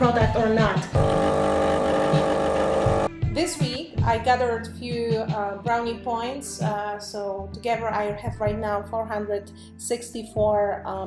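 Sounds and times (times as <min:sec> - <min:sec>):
coffee pouring into mug: 0:01.0 - 0:03.1
espresso machine pump humming: 0:01.0 - 0:03.1.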